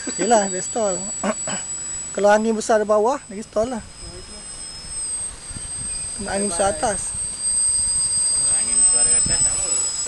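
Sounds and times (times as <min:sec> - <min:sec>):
low rumbling noise: 0:00.0 - 0:10.0
model plane motor whine: 0:00.0 - 0:10.0.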